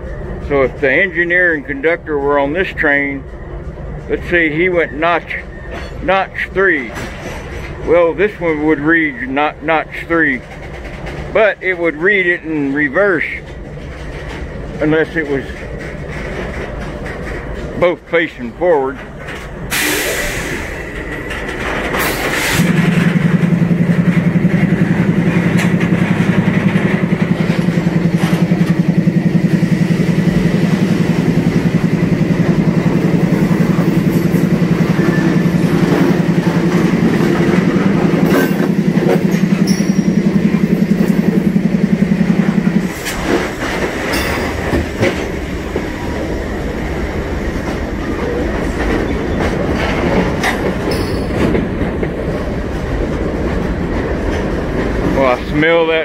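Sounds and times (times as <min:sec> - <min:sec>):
freight cars rolling past: 0:00.0 - 0:56.0
wheel clatter and knocks: 0:06.8 - 0:08.3, 0:10.3 - 0:11.4, 0:12.6 - 0:19.8, 0:20.6 - 0:46.2, 0:47.6 - 0:55.8
low rapidly pulsing hum: 0:22.3 - 0:43.7.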